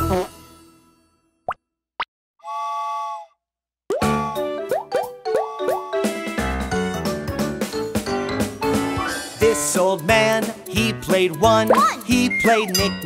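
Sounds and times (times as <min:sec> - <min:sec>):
whistle-like tone: 0:02.4 - 0:03.4, 0:12.1 - 0:12.8
bouncy children's song music: 0:04.0 - 0:13.0.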